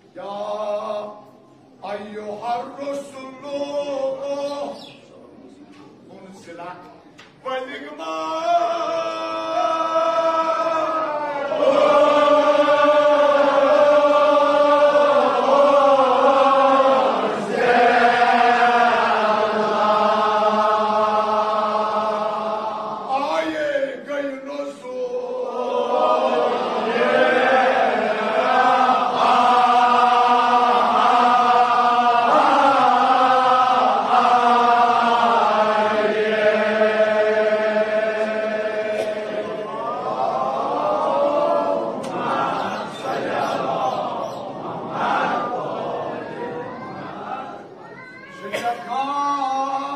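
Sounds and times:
men chanting: 7.8s - 47.7s.

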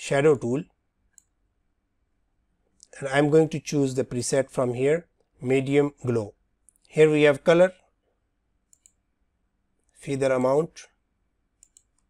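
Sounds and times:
computer mouse click: 1.1s - 1.4s, 8.7s - 9.0s, 11.6s - 12.0s.

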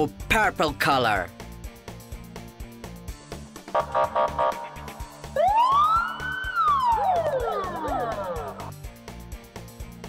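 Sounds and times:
background music with beat: 1.4s - 10.0s
police siren wail: 3.8s - 8.7s.

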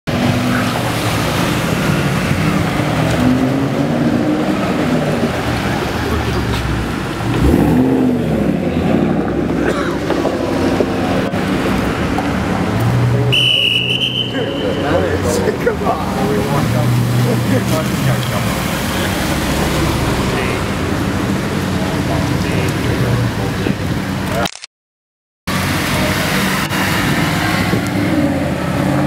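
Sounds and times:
car engine revving and accelerating: 0.1s - 13.3s, 14.8s - 24.2s, 25.5s - 29.0s
rally car engines driving past: 0.1s - 24.3s, 25.5s - 29.0s.

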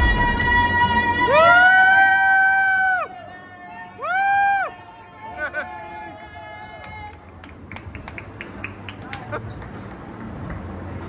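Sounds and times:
high-pitched celebratory whoop: 0.0s - 7.0s.

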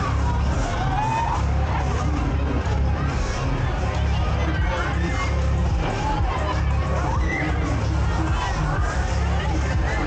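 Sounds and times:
loud ride music bass: 0.0s - 10.0s.

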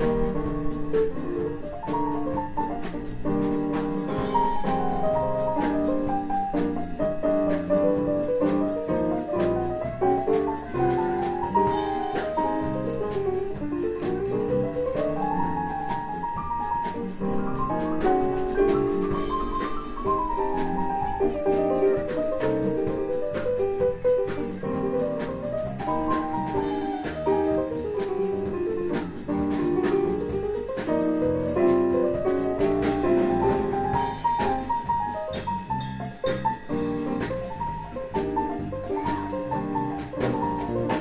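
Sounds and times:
drum kit and cymbal hits: 0.0s - 41.0s
electric bass: 0.0s - 41.0s
live jazz band playing: 0.0s - 41.0s
piano lines: 0.0s - 41.0s.

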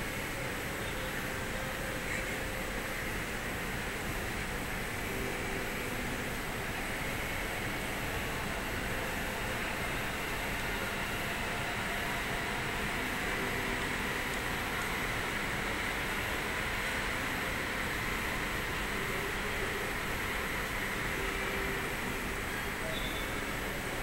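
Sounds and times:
outdoor rumble and hiss: 0.0s - 24.0s.

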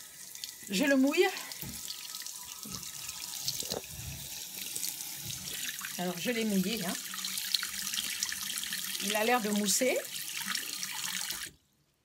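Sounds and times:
tap water running into sink: 0.0s - 11.5s.

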